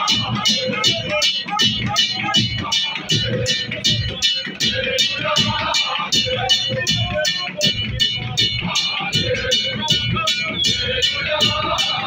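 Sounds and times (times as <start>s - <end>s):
quick steady beat: 0.0s - 12.0s.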